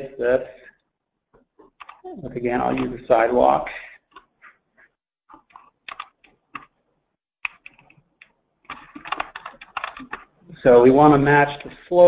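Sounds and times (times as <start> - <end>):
keyboard typing: 1.6 - 3.0, 5.3 - 6.8, 7.4 - 10.4.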